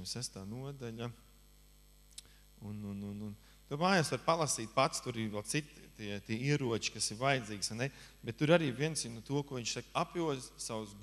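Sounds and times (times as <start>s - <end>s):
low electrical hum: 0.0s - 11.0s
man's drawn-out hesitation sound: 2.6s - 11.0s.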